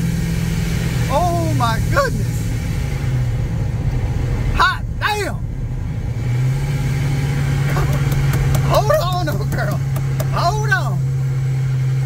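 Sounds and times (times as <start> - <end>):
engine droning in cab: 0.0 - 12.0
person exclaiming: 7.7 - 11.0.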